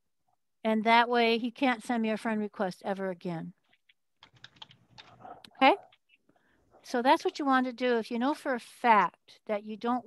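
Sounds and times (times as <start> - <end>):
computer keyboard clicking: 3.8 - 5.2.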